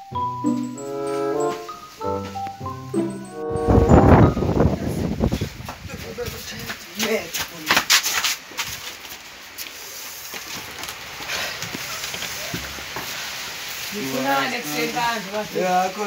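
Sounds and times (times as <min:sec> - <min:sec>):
hurried footsteps: 0:05.2 - 0:13.2.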